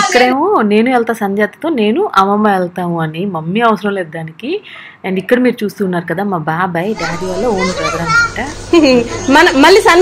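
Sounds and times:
adults talking: 6.9s - 10.0s.

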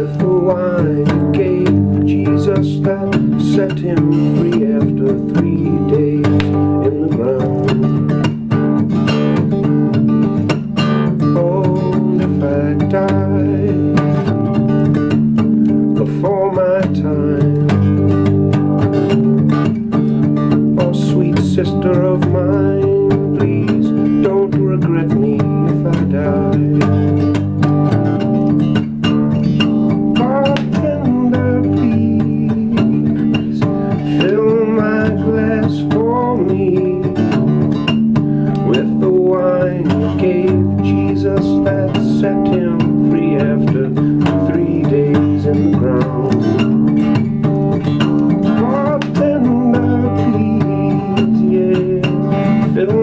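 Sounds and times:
acoustic guitar picked and strummed: 0.0s - 53.0s.

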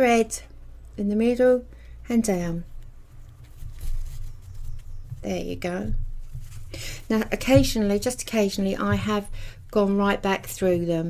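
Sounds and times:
fabric rustling: 2.2s - 11.0s.

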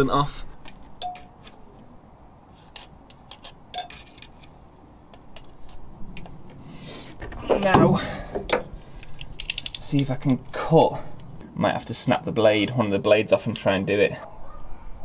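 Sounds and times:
utility knife blade ratcheting clicks: 9.1s - 10.1s.

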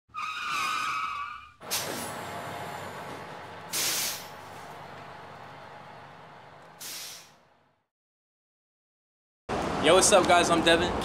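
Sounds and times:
tires squealing: 0.1s - 3.3s.

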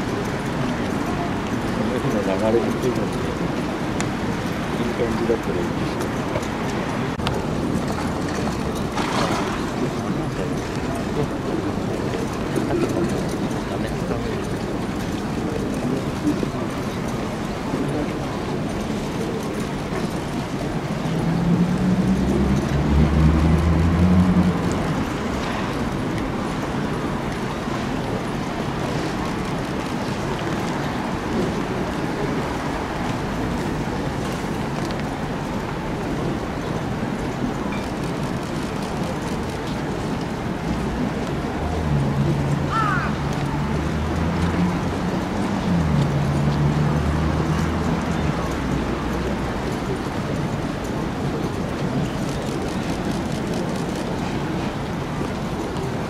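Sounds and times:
outdoor background noise: 0.0s - 56.0s.

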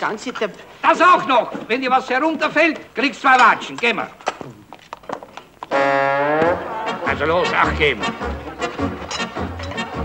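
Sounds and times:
loud brass chord: 5.7s - 7.6s.

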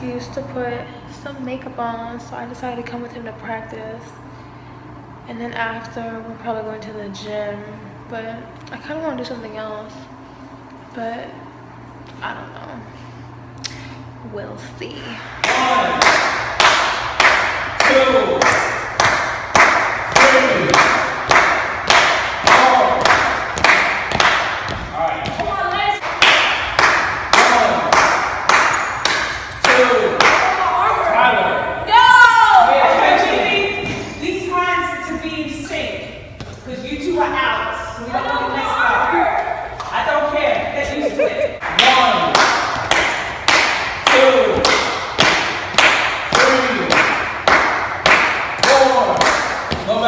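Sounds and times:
echoing percussive hits: 15.4s - 30.6s, 41.6s - 50.0s.

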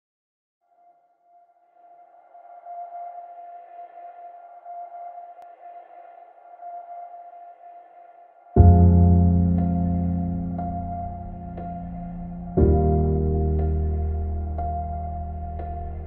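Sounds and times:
sustained synth drone: 8.6s - 16.0s.

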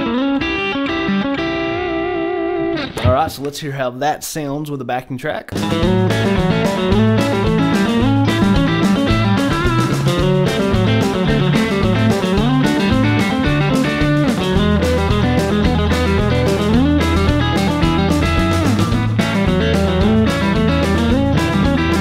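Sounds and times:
backing track with bass line: 0.0s - 4.7s, 5.5s - 22.0s
electric guitar country licks: 0.0s - 22.0s.

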